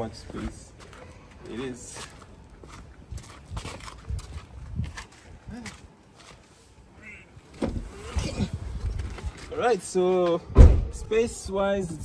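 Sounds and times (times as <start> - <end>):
footsteps on brick paving: 0.0 - 6.8.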